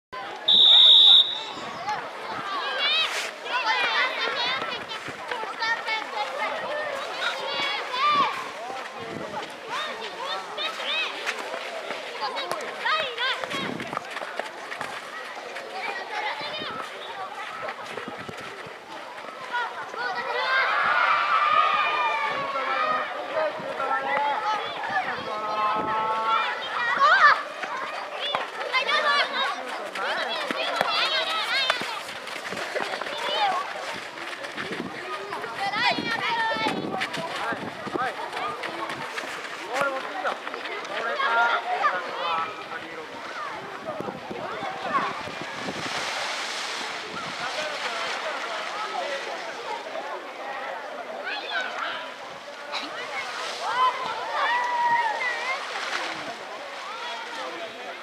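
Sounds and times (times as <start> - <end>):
people shouting and calling out: 46.7 - 58.0.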